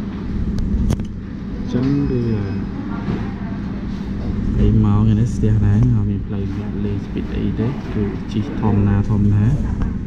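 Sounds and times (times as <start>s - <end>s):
background murmur: 1.3s - 9.8s
person speaking: 4.2s - 9.7s.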